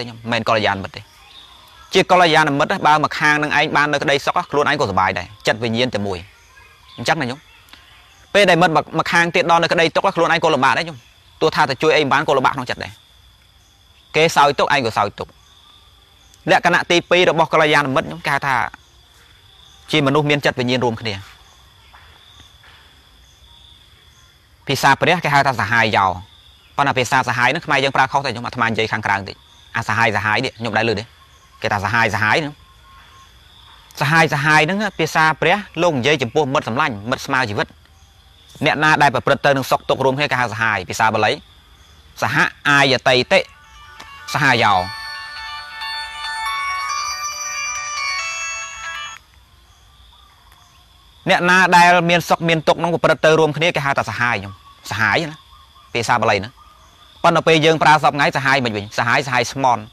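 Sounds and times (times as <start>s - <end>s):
faint high-pitched tone: 42.2s - 49.3s
phone ringtone melody: 42.7s - 49.3s
man's voice: 44.2s - 45.0s.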